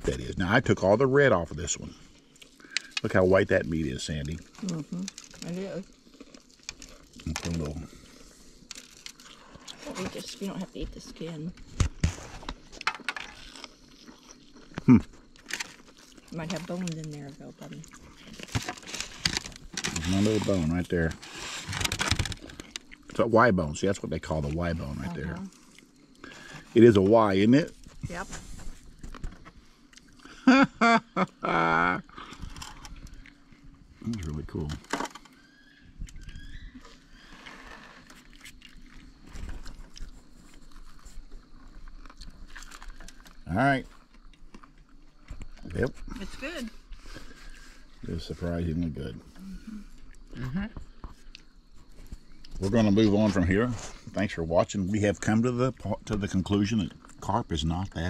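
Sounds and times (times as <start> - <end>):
crunching and chewing food: 0.0 - 31.4, 32.0 - 58.0.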